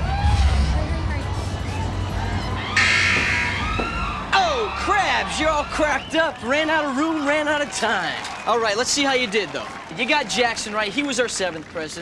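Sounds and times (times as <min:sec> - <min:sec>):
game show buzzer: 0:02.8 - 0:03.8.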